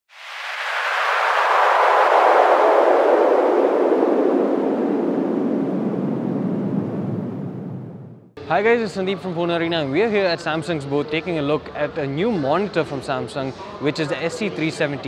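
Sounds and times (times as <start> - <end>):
whoosh sinking in pitch: 0.1 - 8.4.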